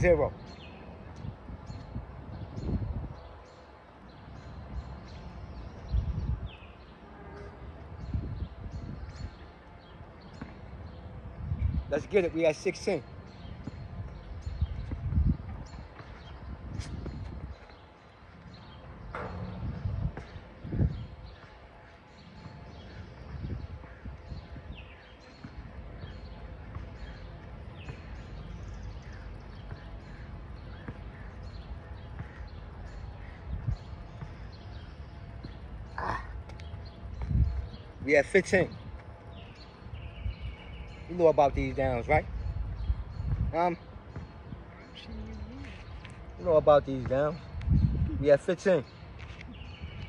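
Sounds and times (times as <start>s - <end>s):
wind rumbling on microphone: 0.0s - 12.1s, 13.4s - 50.0s.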